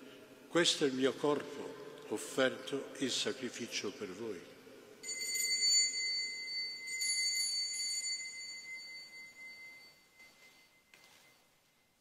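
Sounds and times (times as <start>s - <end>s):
altar bell ringing: 5.0s - 12.0s.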